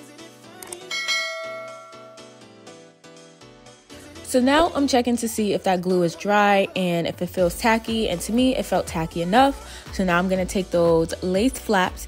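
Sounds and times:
background music: 0.0s - 12.0s
bell chime: 0.8s - 2.5s.

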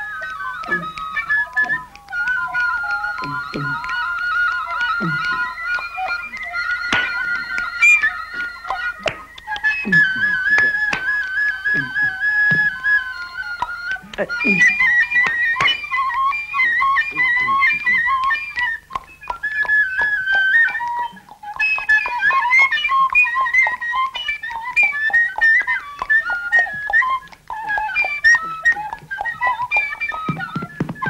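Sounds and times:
wooden flute melody: 0.0s - 31.0s.

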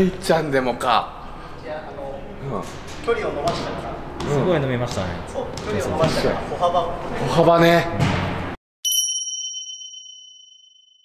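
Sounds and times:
bright bell ding: 8.8s - 11.0s.

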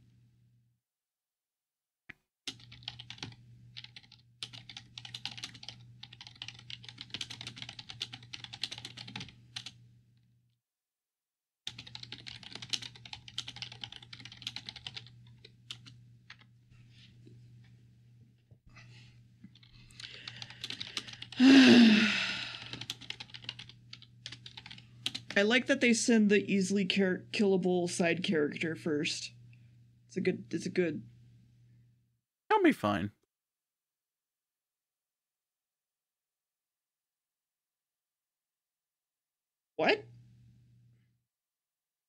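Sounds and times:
rapid keyboard typing: 2.5s - 9.8s, 11.7s - 16.5s, 19.5s - 21.6s, 22.4s - 25.4s
breathy vocal sound: 21.4s - 22.8s.

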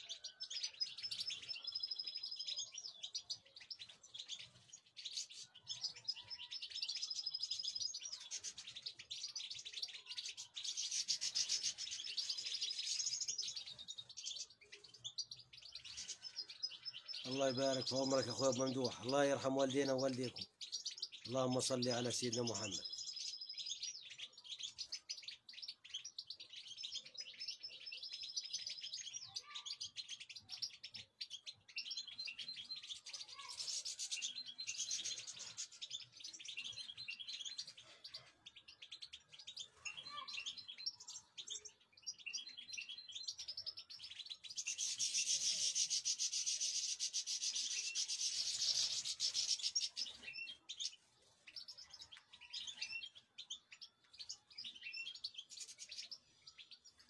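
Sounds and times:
finches chirping and twittering: 0.0s - 57.0s.

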